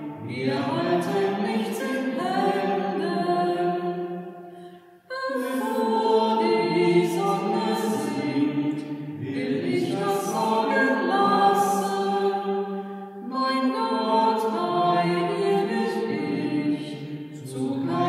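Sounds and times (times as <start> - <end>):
voices singing a hymn: 0.0 - 18.0.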